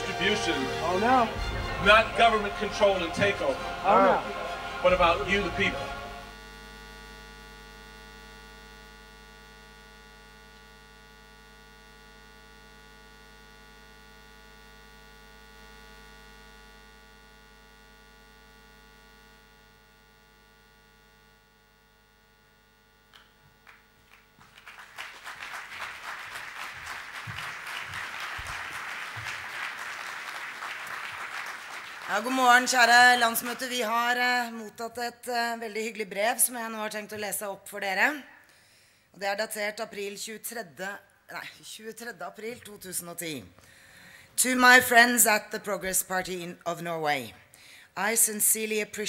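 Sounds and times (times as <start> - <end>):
audience applause: 0.0 - 6.2, 23.6 - 33.9
electrical mains hum: 0.0 - 49.0.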